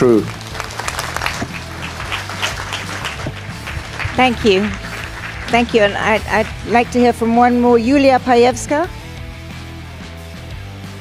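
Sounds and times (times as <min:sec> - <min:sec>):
audience applauding: 0:00.0 - 0:07.8.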